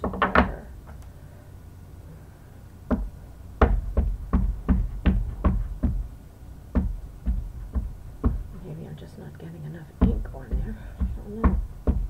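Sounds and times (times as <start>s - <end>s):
rubber stamp knocking on ink pad: 2.9s - 6.1s, 6.7s - 8.6s, 10.0s - 12.0s.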